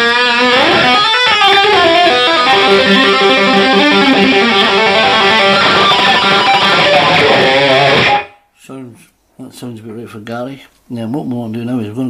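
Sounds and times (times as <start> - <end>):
distorted electric guitar lead: 0.0 - 8.4.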